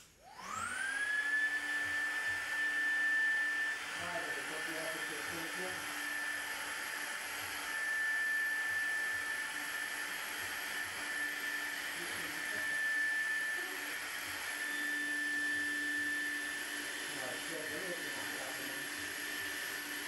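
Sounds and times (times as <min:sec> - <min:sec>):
electric air pump whine: 0:00.0 - 0:20.0.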